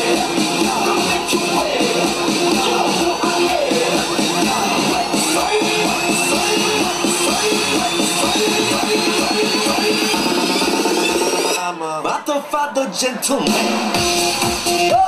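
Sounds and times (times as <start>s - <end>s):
stuttering repeated synth note: 0.0s - 11.7s.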